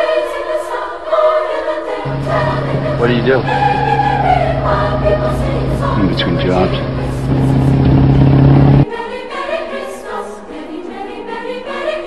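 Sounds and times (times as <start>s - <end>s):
car engine running: 2.1s - 8.9s.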